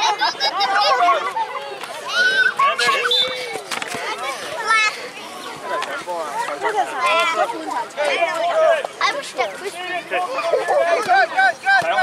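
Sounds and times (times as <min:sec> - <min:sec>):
young children chattering: 0:00.0 - 0:12.0.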